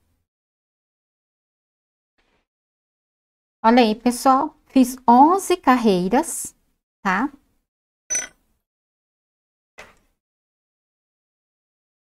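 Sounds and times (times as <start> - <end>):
metal hook clinking on wood: 8.1 - 8.4.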